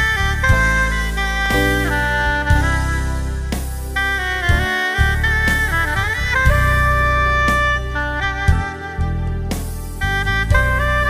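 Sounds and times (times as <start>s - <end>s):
alto saxophone melody: 0.0s - 11.0s
bass and drum backing track: 0.0s - 11.0s.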